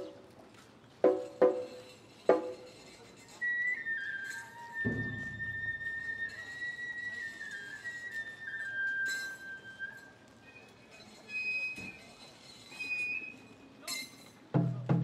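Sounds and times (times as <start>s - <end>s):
bamboo flute melody: 1.0s - 13.6s
deep drum stroke: 4.8s - 5.8s.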